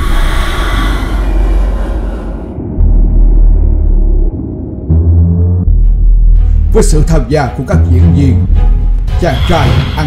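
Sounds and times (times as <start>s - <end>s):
deep rumble: 0.0s - 9.0s.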